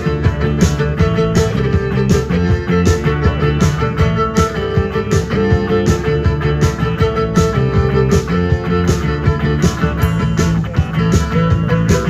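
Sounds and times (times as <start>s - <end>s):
bass guitar: 0.0s - 12.0s
drum kit: 0.0s - 12.0s
electric guitar: 0.0s - 12.0s
violin: 0.0s - 12.0s.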